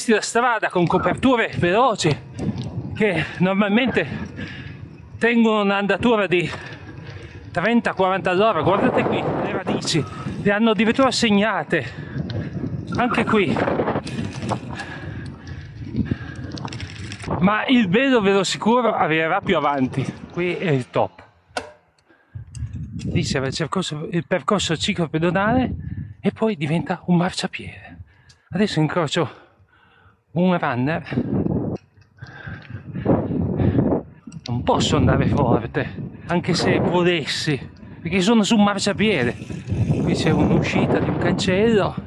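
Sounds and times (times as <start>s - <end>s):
wind: 0.0s - 42.0s
bike freewheel ticking: 39.0s - 40.5s.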